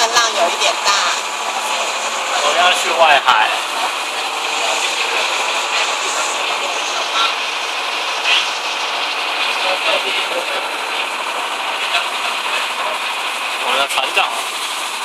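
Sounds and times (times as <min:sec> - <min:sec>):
faint voices: 0:00.0 - 0:14.6
motorboat engine and water rushing: 0:00.0 - 0:15.0.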